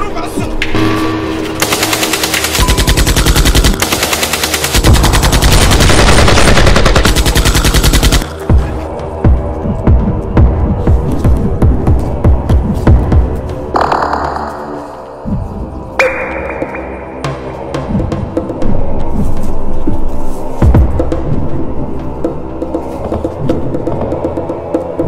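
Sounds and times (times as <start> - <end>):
rapid automatic gunfire: 1.6 - 8.3
music with pulsing beat: 1.7 - 15.1.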